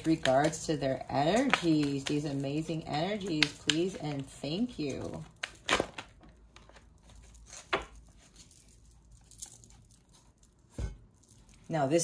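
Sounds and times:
cards shuffling: 0:00.0 - 0:09.7.

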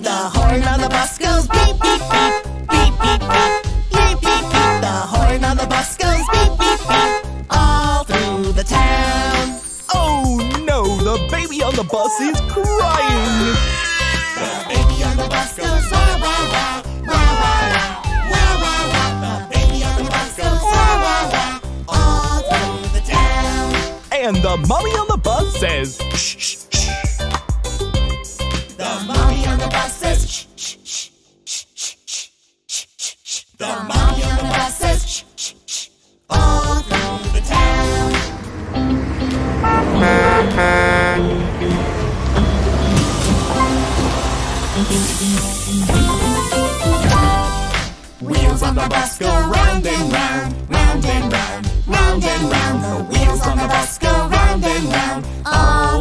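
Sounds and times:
nursery rhyme music with bass: 0:00.0 - 0:31.7, 0:33.6 - 0:35.2, 0:36.3 - 0:56.0
cartoon bus horn toots: 0:01.2 - 0:05.1, 0:06.0 - 0:07.4, 0:20.6 - 0:21.4, 0:39.4 - 0:44.1
bus engine rumbling: 0:01.3 - 0:10.2, 0:14.7 - 0:22.8, 0:36.6 - 0:48.8
baby crying wails: 0:11.9 - 0:14.8, 0:15.6 - 0:19.4, 0:20.4 - 0:21.5.

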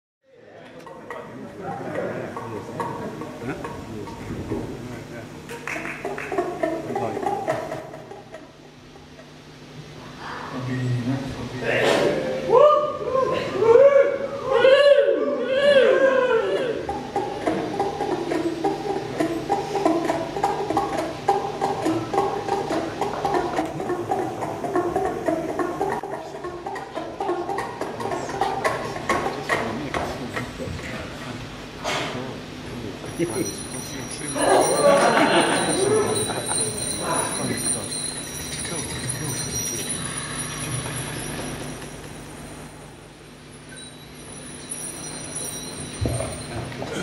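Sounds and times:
thin sustained high tones: 0:33.0 - 0:46.8.

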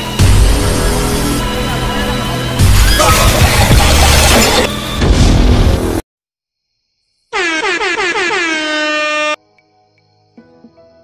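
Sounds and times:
loud air horn blast: 0:07.4 - 0:09.4.

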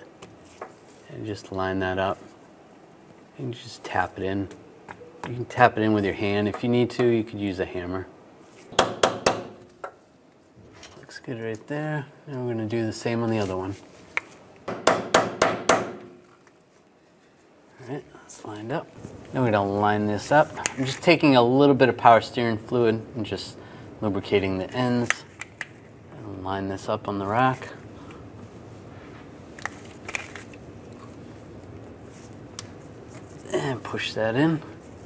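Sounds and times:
low steady hiss: 0:00.0 - 0:35.0
plastic sleeve crackling: 0:29.5 - 0:33.5.

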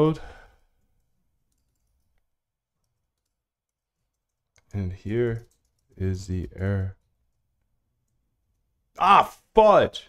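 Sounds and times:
person speaking: 0:04.6 - 0:07.2, 0:08.9 - 0:10.0.

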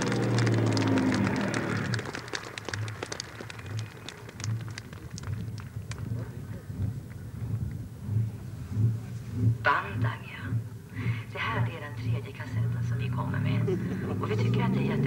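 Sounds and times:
truck engine: 0:00.0 - 0:06.3, 0:12.5 - 0:15.0
low rumble with crackles: 0:00.0 - 0:14.7.

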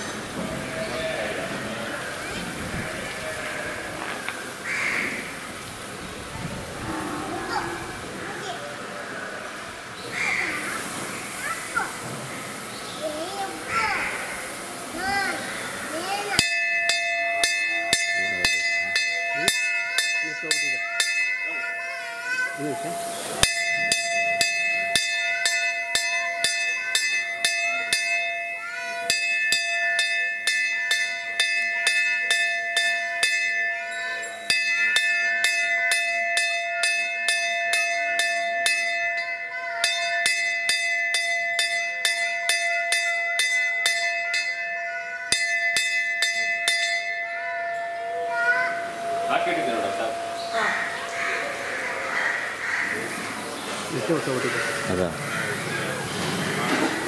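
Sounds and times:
voices: 0:00.0 - 0:36.8, 0:43.4 - 0:57.0.

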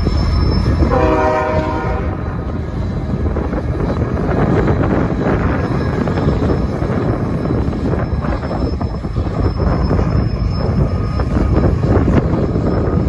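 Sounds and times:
diesel locomotive engines rumbling: 0:00.0 - 0:13.0
train wagons rolling on rails: 0:00.0 - 0:13.0.

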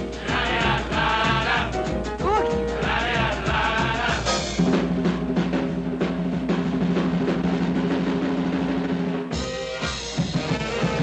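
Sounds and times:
rapid drum kit strokes: 0:00.0 - 0:11.0.

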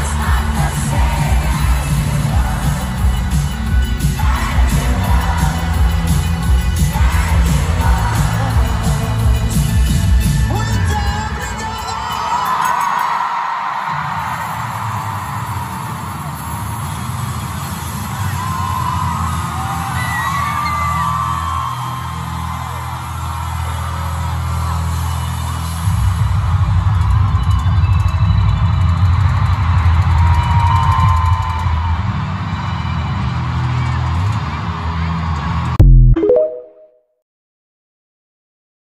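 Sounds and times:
heavy bass beat: 0:00.0 - 0:10.4, 0:35.8 - 0:36.2
live pop band music: 0:00.0 - 0:11.6, 0:35.8 - 0:36.8
fans whooping and screaming: 0:10.5 - 0:35.8.

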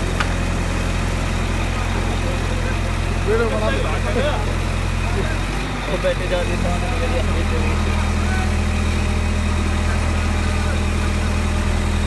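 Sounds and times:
diesel crane engine running: 0:00.0 - 0:12.0.

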